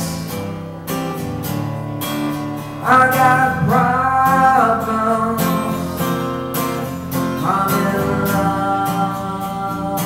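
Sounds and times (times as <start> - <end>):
acoustic guitar strumming: 0.0 - 10.0
person singing: 2.8 - 6.1, 7.2 - 10.0.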